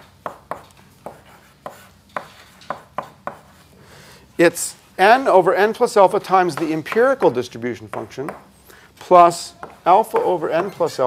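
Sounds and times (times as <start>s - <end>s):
chalk tapping on blackboard: 0.0s - 3.6s, 9.6s - 10.7s.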